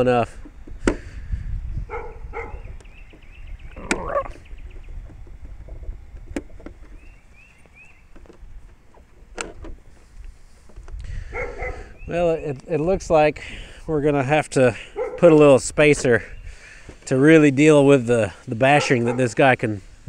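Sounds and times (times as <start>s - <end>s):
wind rumble on microphone: 0.0s - 14.1s.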